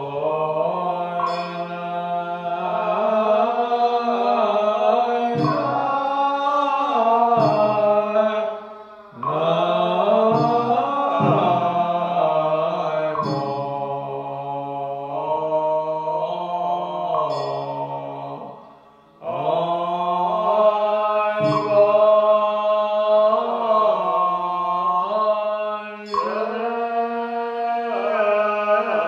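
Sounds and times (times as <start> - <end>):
liturgical chanting: 0.0 - 29.0.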